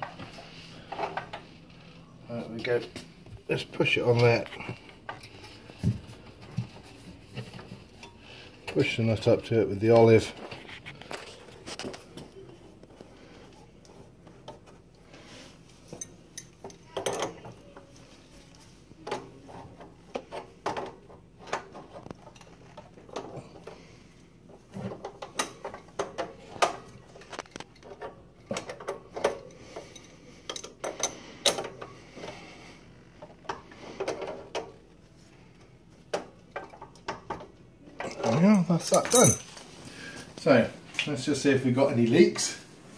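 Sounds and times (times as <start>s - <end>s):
metal tools clinking on pipe fittings: 38.1s - 39.5s.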